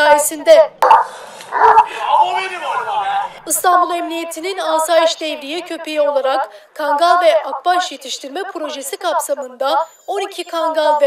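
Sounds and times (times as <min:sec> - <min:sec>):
dog barking: 0:00.8 - 0:02.2.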